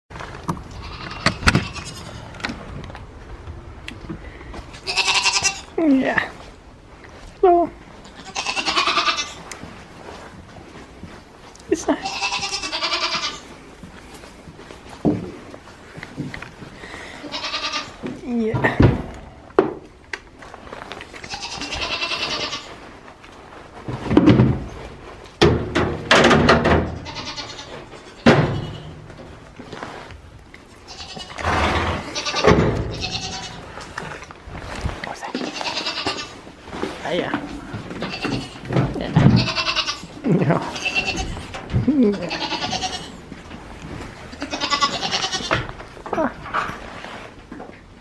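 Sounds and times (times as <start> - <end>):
goat bleating: 0.7 - 2.4, 4.7 - 5.8, 8.0 - 9.6, 11.9 - 13.5, 17.2 - 18.0, 21.2 - 22.8, 27.0 - 29.0, 30.8 - 34.0, 35.3 - 36.5, 37.9 - 43.2, 44.3 - 45.6.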